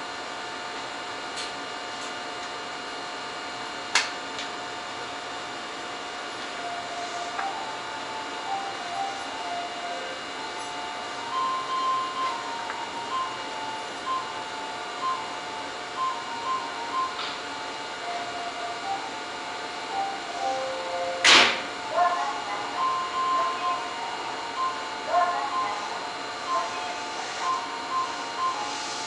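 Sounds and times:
electronic chime melody: 6.6 - 21.2, 21.9 - 29.0.

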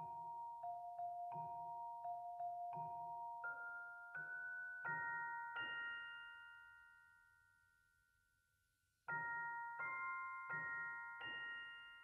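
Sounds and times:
glockenspiel-like chord ringing: 0.0 - 8.2, 9.1 - 12.0.

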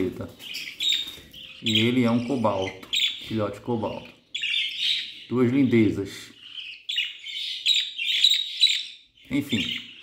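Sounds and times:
budgerigars chirping: 0.0 - 10.0.

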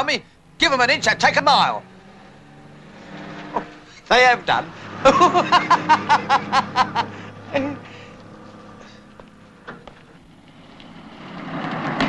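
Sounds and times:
car engine approaching: 0.0 - 12.0
man laughing: 4.8 - 8.1.

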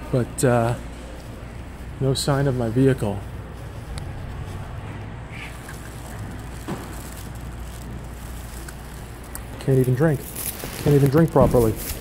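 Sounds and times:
parking garage low rumble: 0.0 - 12.0.

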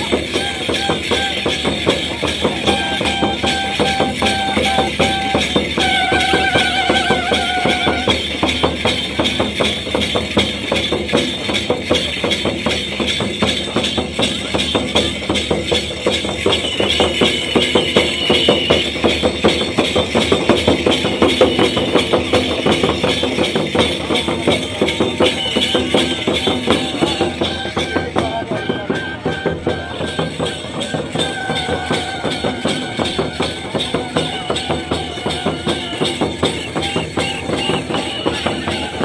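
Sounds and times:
held high note: 0.0 - 9.2, 15.8 - 22.9
drums beaten in fast rhythm: 0.0 - 39.0
jingling metal percussion: 0.0 - 39.0.

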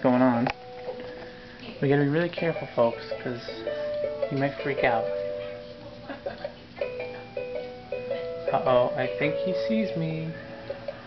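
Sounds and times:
electronic lullaby melody: 2.1 - 5.8, 6.8 - 11.0.

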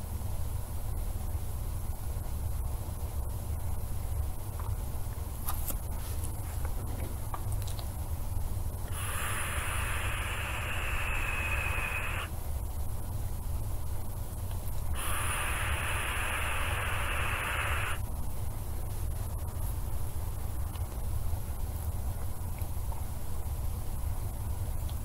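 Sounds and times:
low hum: 8.0 - 24.9
hiss: 8.9 - 12.4, 14.8 - 18.1.

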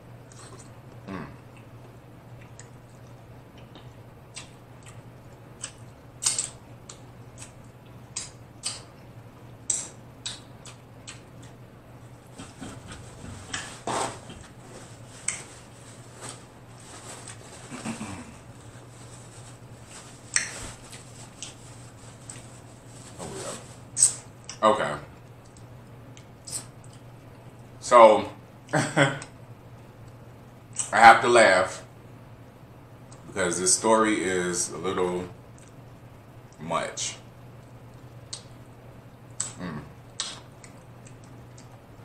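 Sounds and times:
faint low hum: 0.0 - 42.0
chewing and mouth clicks: 1.4 - 8.9, 9.7 - 13.7, 15.2 - 15.5, 20.3 - 21.6, 25.2 - 27.7, 39.3 - 42.0.

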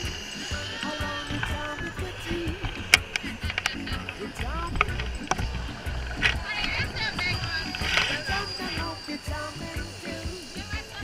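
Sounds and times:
background music: 0.0 - 11.0
people's voices: 0.0 - 11.0
wind buffeting microphone: 1.1 - 11.0.

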